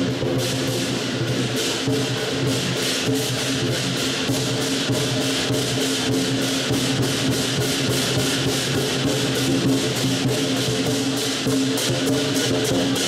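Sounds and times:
big drum beating: 0.0s - 13.0s
clashing cymbals: 0.0s - 13.0s.

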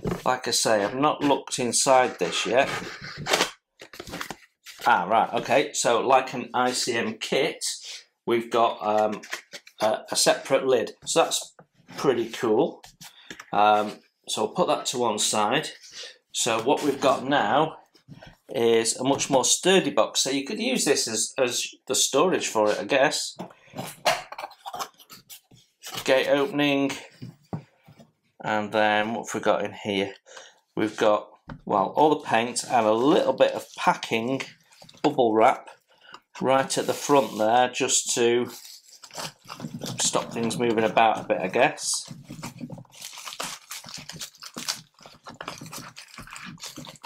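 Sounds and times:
bubble wrap crinkling: 42.0s - 47.0s.

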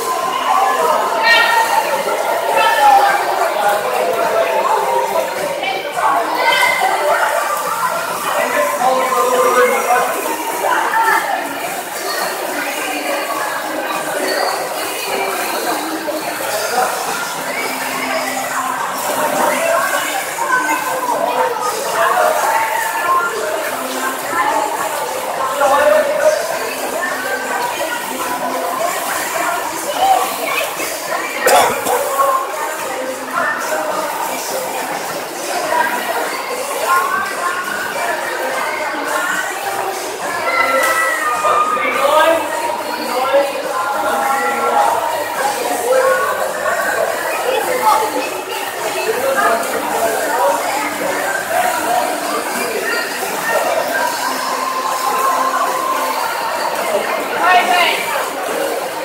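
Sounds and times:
water splashing: 0.0s - 59.0s.

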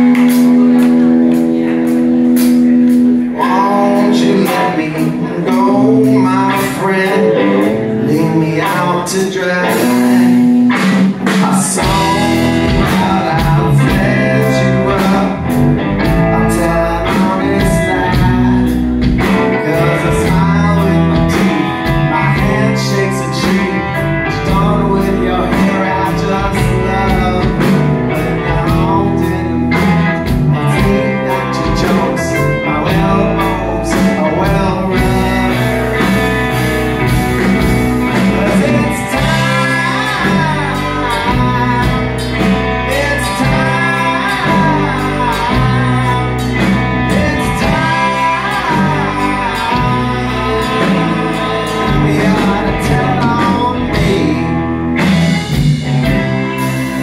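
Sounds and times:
live rock band playing: 0.0s - 57.0s
lead vocal singing: 3.2s - 55.6s.

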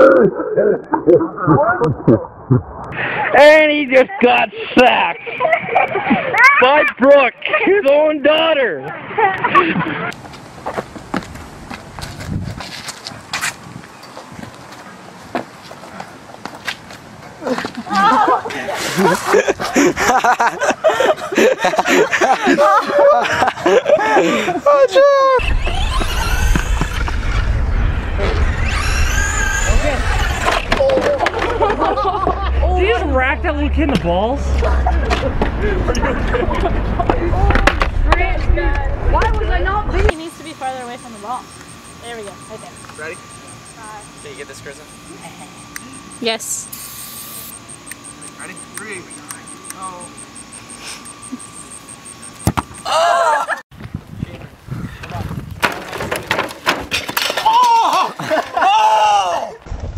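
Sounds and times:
electric motor whining: 25.4s - 36.4s
sharp clicks: 41.0s - 45.0s, 45.6s - 52.9s
person speaking: 47.9s - 51.9s
unicycle clattering on wooden pallets: 55.6s - 58.6s.

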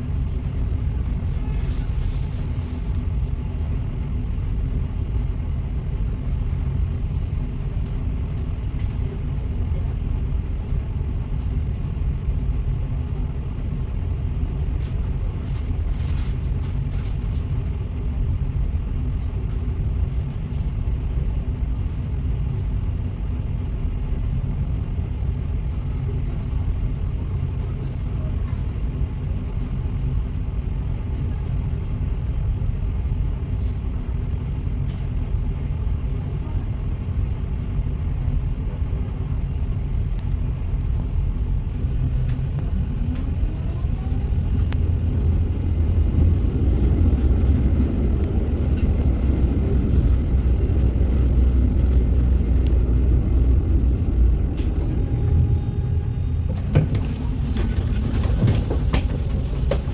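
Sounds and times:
tram rumble: 0.0s - 59.9s
tram whine: 0.0s - 59.9s.

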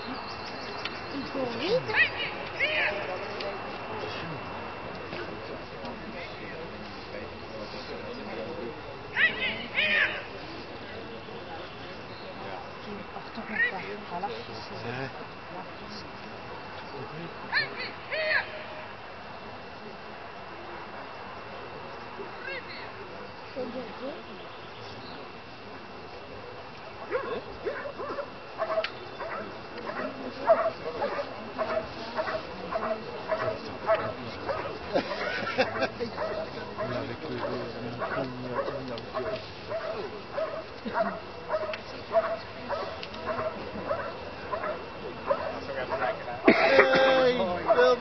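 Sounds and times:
dog barking: 27.1s - 46.2s.

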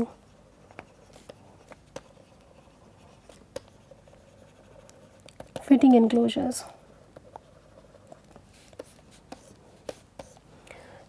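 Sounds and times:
stylus scratching on tablet: 0.0s - 10.4s.

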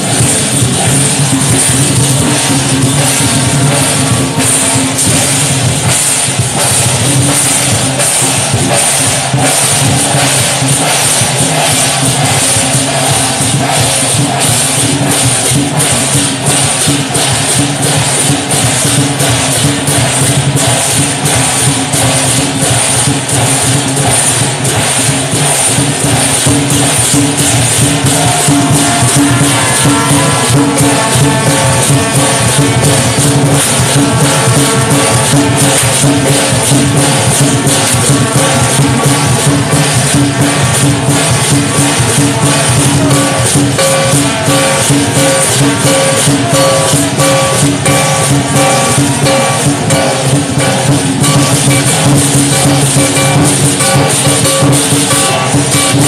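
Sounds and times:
metal percussion clashing: 0.0s - 56.0s
steady drumming: 0.0s - 56.0s.

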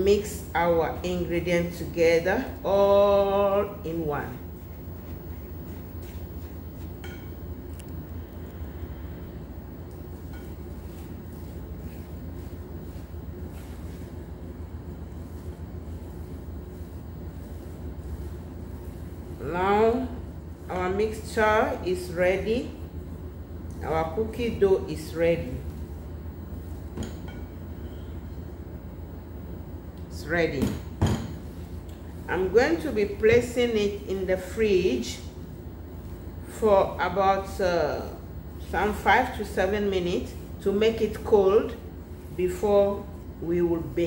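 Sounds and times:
steady low hum: 0.0s - 44.0s
spatula scraping dough in bowl: 0.2s - 7.4s
spatula stirring dough in glass bowl: 0.2s - 7.8s, 10.0s - 22.8s, 36.0s - 44.0s.

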